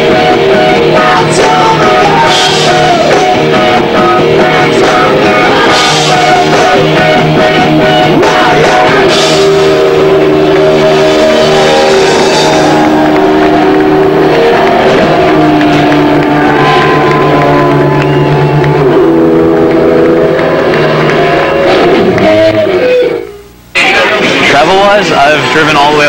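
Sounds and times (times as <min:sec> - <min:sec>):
electric guitar sustained chords: 0:00.0 - 0:23.6.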